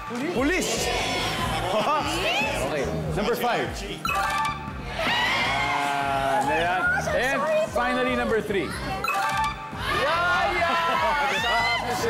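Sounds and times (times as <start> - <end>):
game show chime: 4.0 - 4.8, 9.0 - 9.8.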